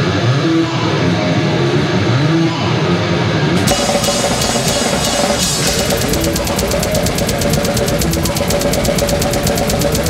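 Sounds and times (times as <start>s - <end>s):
death metal band playing live: 3.6s - 10.0s
rapid cymbal strokes: 3.6s - 10.0s.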